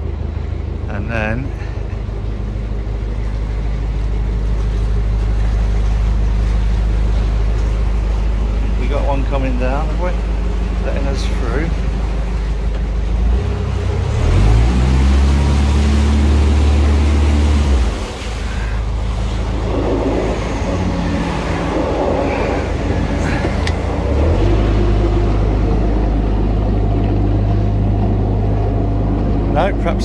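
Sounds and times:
diesel boat engine running: 0:00.0 - 0:30.0.

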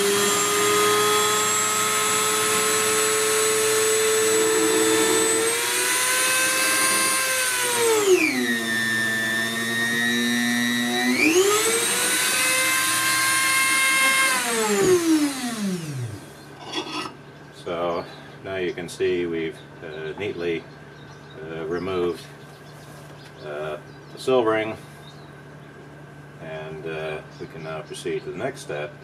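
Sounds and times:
rotary tool whining: 0:00.0 - 0:17.2.

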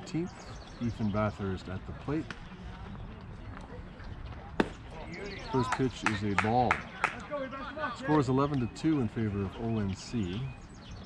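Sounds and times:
faint outdoor background noise: 0:00.0 - 0:11.0
baseball popping into mitt: 0:04.6 - 0:04.8.

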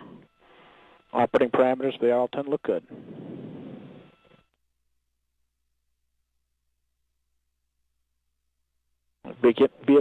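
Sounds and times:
radio channel hiss: 0:00.0 - 0:04.4.

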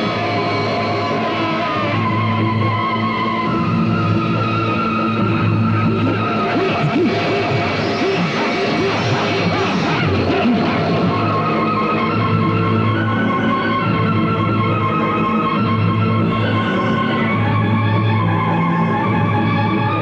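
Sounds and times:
loud background score music: 0:00.0 - 0:20.0.

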